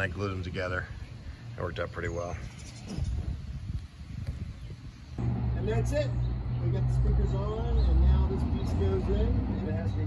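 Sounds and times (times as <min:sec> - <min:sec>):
wind buffeting microphone: 0:02.2 - 0:05.2.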